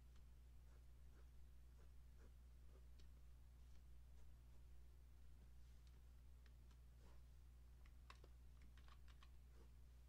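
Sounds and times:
steady low hum: 0:00.0 - 0:10.0
computer keys clicking: 0:07.8 - 0:09.4.

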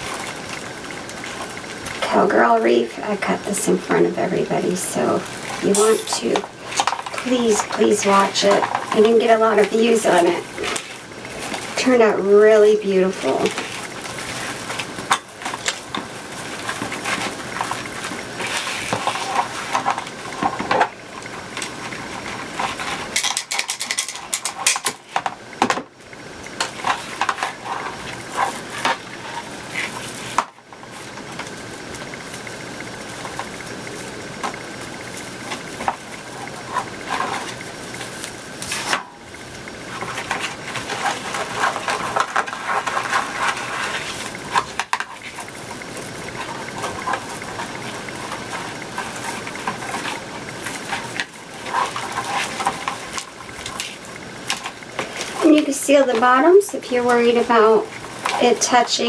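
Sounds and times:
plastic mesh rustling and crinkling: 0:00.0 - 0:59.0.

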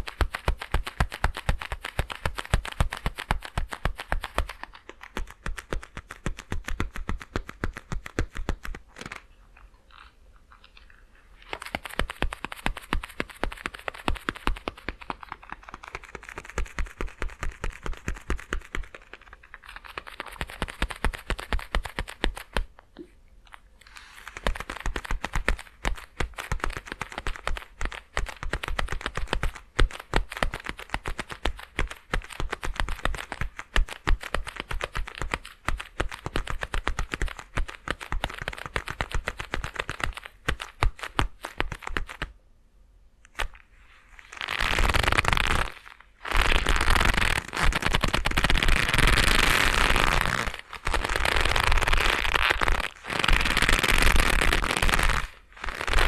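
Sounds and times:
leather gloves creaking: 0:44.2 - 0:56.0.

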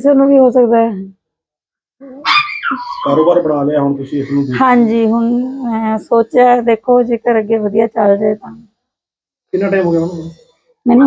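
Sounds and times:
small dog barking: 0:02.2 - 0:03.2.

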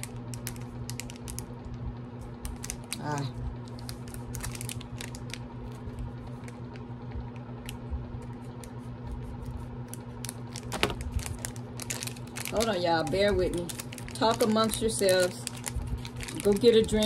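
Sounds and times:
wrapping crinkling: 0:00.0 - 0:06.9, 0:07.6 - 0:17.0
steady low hum: 0:00.0 - 0:17.0.

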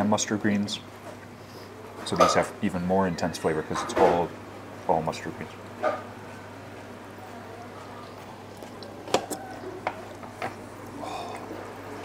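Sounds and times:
steady low hum: 0:04.2 - 0:12.0
wet chewing and slurping: 0:08.1 - 0:12.0.

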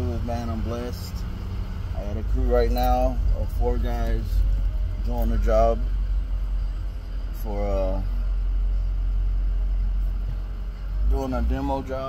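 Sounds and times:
vehicle rumble inside cabin: 0:00.0 - 0:12.0.

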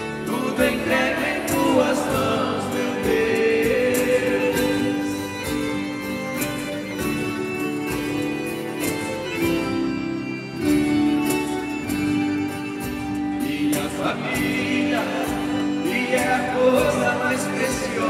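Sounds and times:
strummed acoustic guitar: 0:00.0 - 0:18.0
sustained backing notes: 0:00.0 - 0:18.0.

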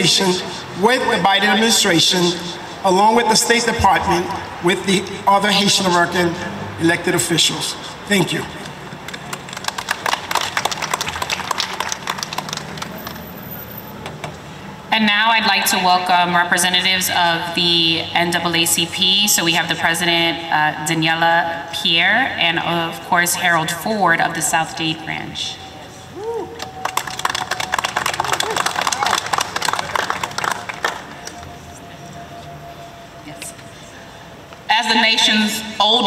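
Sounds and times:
crowd clapping: 0:08.7 - 0:14.2, 0:26.5 - 0:31.7.

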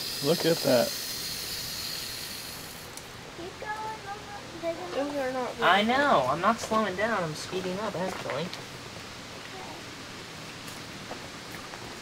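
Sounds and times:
hiss of water from hose: 0:00.0 - 0:04.0.

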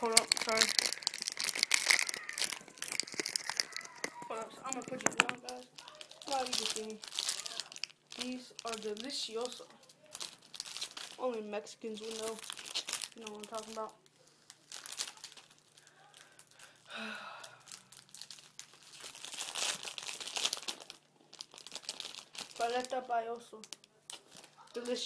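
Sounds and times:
crinkling handling noise: 0:00.0 - 0:16.9, 0:17.5 - 0:25.0.

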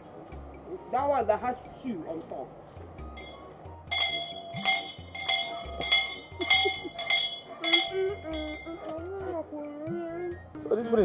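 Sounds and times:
metal hand bell ringing: 0:03.2 - 0:09.0.

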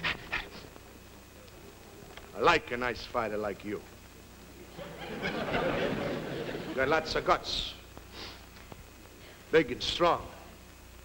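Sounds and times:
faint low background hum: 0:00.0 - 0:11.0
man huffing sharp breaths: 0:08.1 - 0:08.5.

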